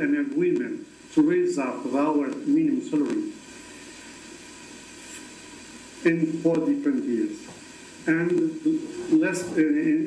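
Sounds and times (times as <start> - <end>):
faint steady line hiss: 0.0 - 10.0.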